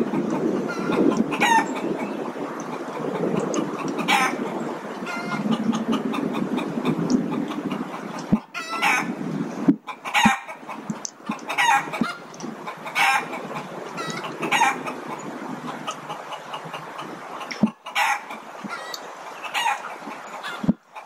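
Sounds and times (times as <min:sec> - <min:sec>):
bird calling: 0:00.0 - 0:21.0.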